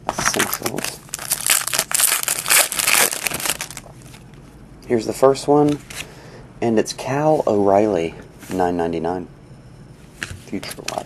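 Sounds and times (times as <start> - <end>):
foil wrapper tearing and crinkling: 0.2 - 4.2.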